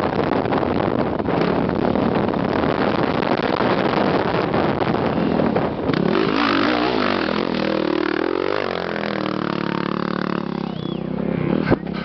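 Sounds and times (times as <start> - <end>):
motocross bike engine revving: 1.3 - 12.0.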